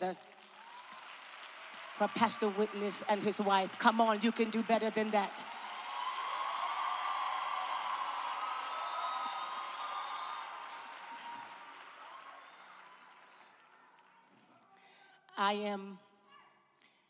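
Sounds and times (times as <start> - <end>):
crowd applauding: 0.0 - 14.5
cheers and calls: 0.3 - 3.7, 5.2 - 14.4.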